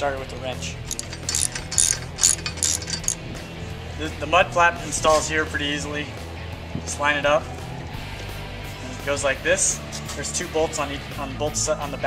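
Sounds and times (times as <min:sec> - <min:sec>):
ratchet wrench clicking: 0:00.9 - 0:03.2.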